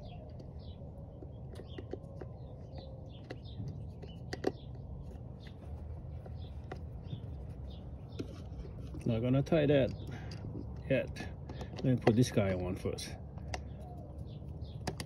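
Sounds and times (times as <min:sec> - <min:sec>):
birds chirping: 0:00.0 - 0:15.0.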